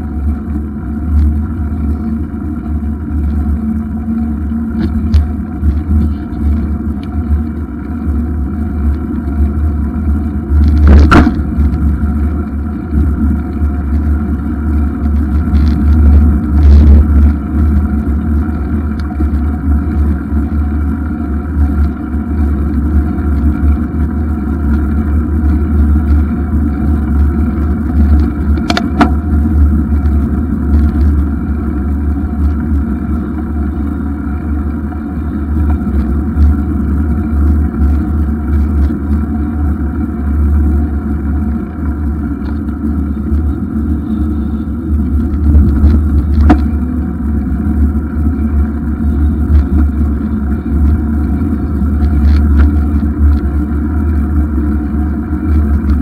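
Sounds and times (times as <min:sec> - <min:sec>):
tyre rumble: 0:00.0 - 0:56.0
sharp knocks from bike: 0:10.6 - 0:11.9, 0:28.5 - 0:29.3, 0:45.8 - 0:46.8.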